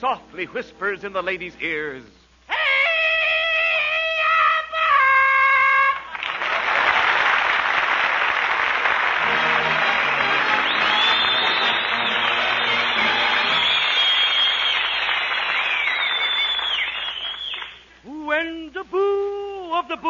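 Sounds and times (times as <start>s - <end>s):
audience applauding: 6.1s - 17.8s
high whistling: 9.8s - 17.9s.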